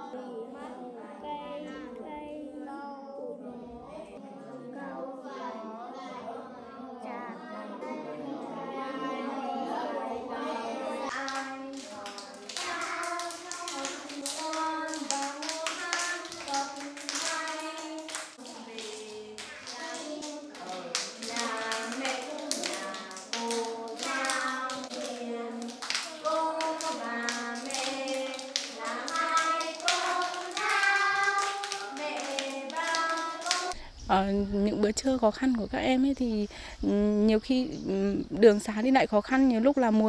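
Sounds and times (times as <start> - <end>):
children singing together: 0.0 - 33.8
hands clapping: 11.1 - 33.8.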